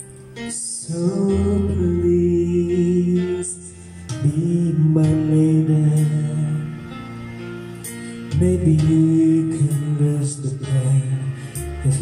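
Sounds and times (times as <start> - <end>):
man singing long held notes: 0.0 - 6.8, 8.3 - 12.0
music backing track: 0.0 - 12.0.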